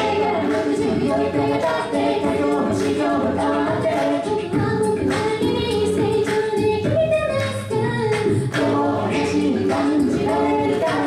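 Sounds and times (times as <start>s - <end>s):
choir singing a cappella: 0.0s - 6.9s, 8.4s - 11.0s.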